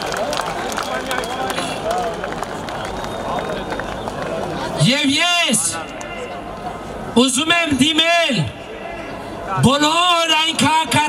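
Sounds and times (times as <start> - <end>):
sharp claps: 0.0 - 4.4
crowd voices: 0.0 - 11.0.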